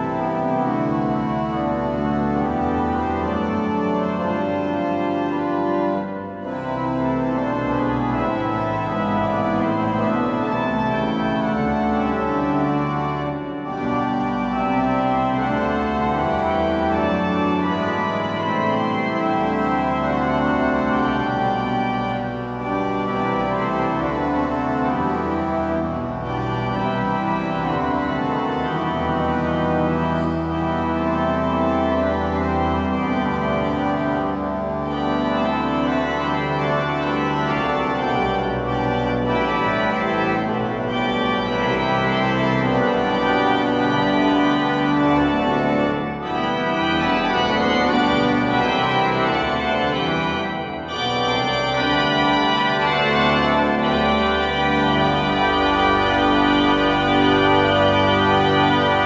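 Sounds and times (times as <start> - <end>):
church pipe organ playing: 0.0 - 59.0.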